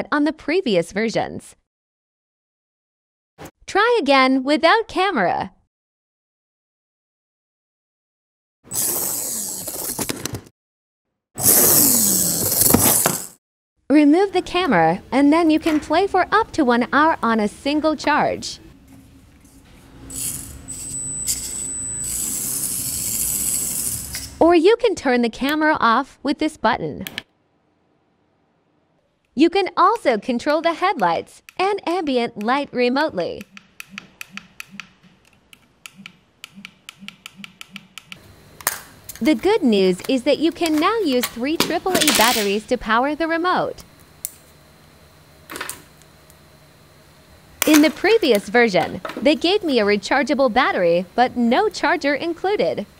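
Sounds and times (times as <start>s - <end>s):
small electric motor whirring: 8.7s - 10.0s, 11.4s - 13.3s, 20.0s - 24.4s
sharp ticks: 33.4s - 38.2s.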